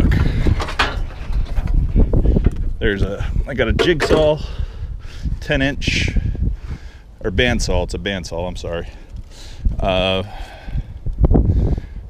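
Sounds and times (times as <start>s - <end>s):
low rumble on microphone: 0.0s - 12.0s.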